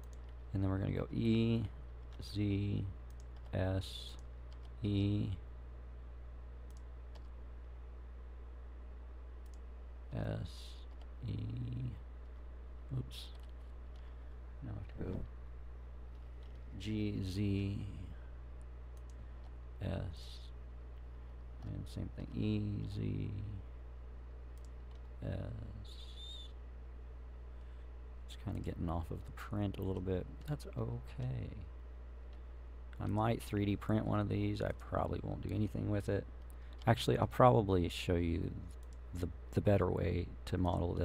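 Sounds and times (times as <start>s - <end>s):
computer keyboard clicks: 0.0s - 0.4s, 3.1s - 3.6s, 4.2s - 4.8s, 6.7s - 7.3s
keyboard and mouse clicks: 0.0s - 0.5s, 3.0s - 4.8s, 6.6s - 7.4s, 9.4s - 9.7s, 13.2s - 14.1s, 16.1s - 16.7s, 24.5s - 25.2s
low electrical hum: 0.0s - 41.0s.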